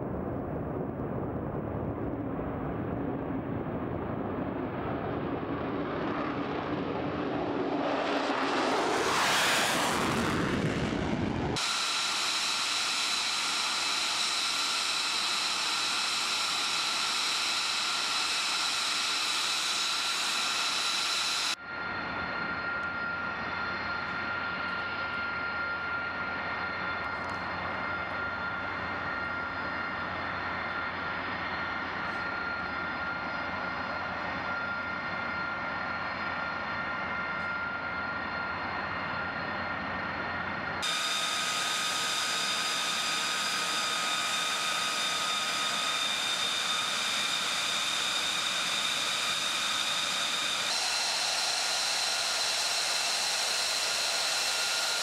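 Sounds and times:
jet engines idling whine: 0:00.0 - 0:55.0.

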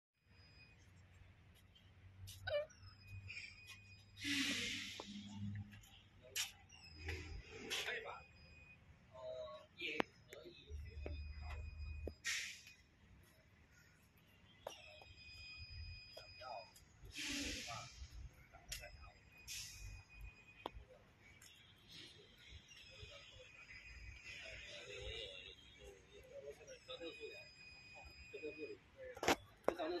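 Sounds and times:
short hiss: 0:04.2 - 0:05.3, 0:12.2 - 0:12.8, 0:17.1 - 0:18.1, 0:19.5 - 0:19.9.

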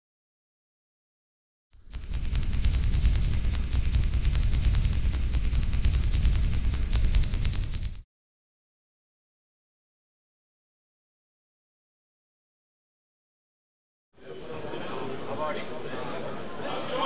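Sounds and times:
deep rumble: 0:01.8 - 0:08.0
rapid crackling clicks: 0:01.8 - 0:08.0.

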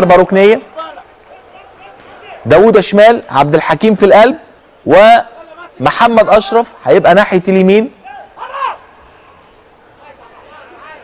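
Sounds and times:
stadium ambience hiss: 0:00.0 - 0:11.0
man shouting: 0:05.4 - 0:06.8, 0:08.0 - 0:08.9.

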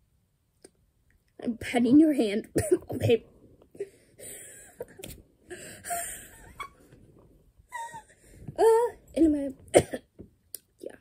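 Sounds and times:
woman's stifled laughter: 0:07.7 - 0:08.2.

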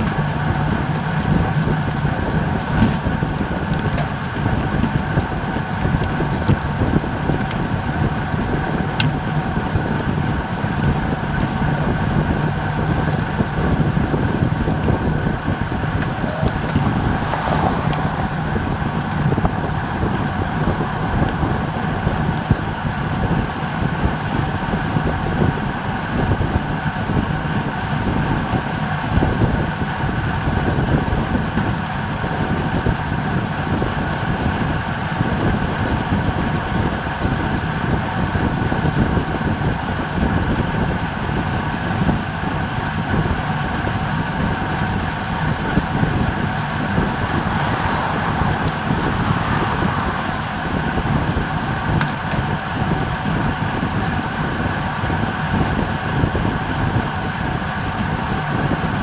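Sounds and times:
wind rushing over microphone: 0:00.0 - 0:59.0.

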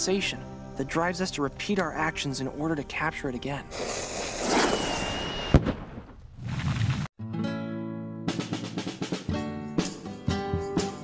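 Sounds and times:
fuse fizzing and whistling: 0:03.8 - 0:05.6
firework bang: 0:04.4 - 0:07.1.

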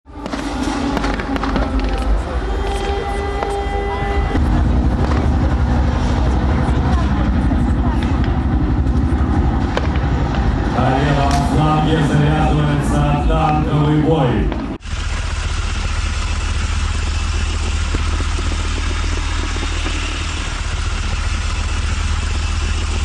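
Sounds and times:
sharp bangs: 0:00.1 - 0:23.0
tank engine and tracks rumbling: 0:00.1 - 0:23.0
loudspeaker voice: 0:10.6 - 0:14.7.

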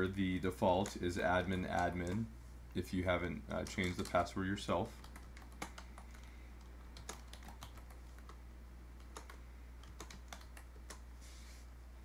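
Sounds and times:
steady low hum: 0:00.0 - 0:12.0
keystrokes on computer keyboard: 0:01.7 - 0:02.2, 0:03.5 - 0:04.2, 0:05.0 - 0:08.4, 0:09.0 - 0:11.0.

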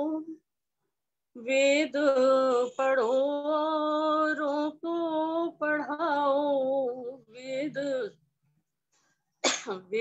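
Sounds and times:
woman singing devotional song: 0:00.0 - 0:00.6, 0:01.3 - 0:08.3.

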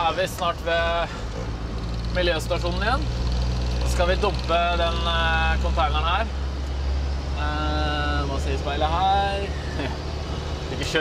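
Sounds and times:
man talking: 0:00.0 - 0:01.1, 0:03.9 - 0:06.3, 0:07.4 - 0:09.7, 0:10.7 - 0:11.0
truck engine drone: 0:00.0 - 0:11.0.

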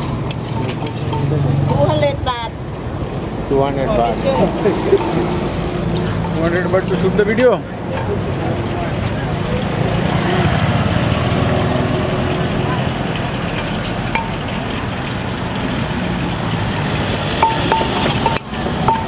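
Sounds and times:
passing traffic: 0:00.0 - 0:19.0
voices: 0:00.4 - 0:19.0
wooden pestle pounding in mortar: 0:17.1 - 0:19.0.

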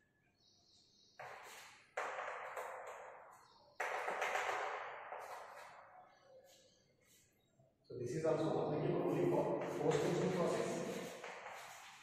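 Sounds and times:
chalk scraping on blackboard: 0:09.7 - 0:12.0.

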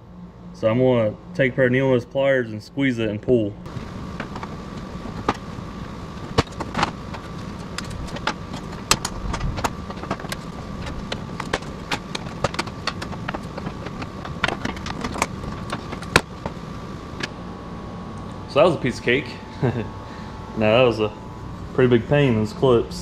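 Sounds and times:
steady shop hum: 0:00.0 - 0:23.0.

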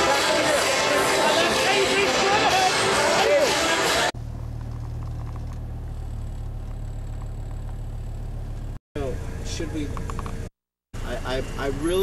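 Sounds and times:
car engine idling: 0:04.1 - 0:12.0.

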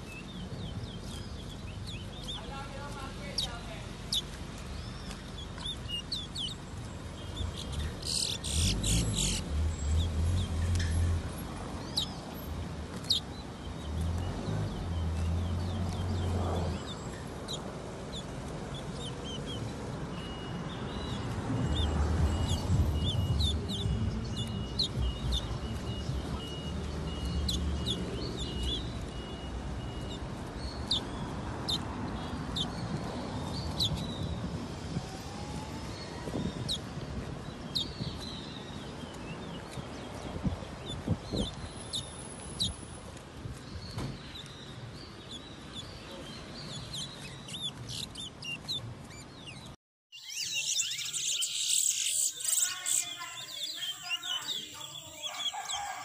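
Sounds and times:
songbirds chirping: 0:00.0 - 0:56.0
pulsing bird trill: 0:50.1 - 0:55.8.

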